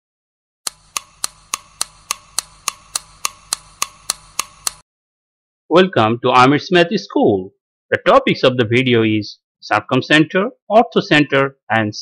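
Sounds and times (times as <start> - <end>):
sharp woody clicks: 0.7 - 4.8.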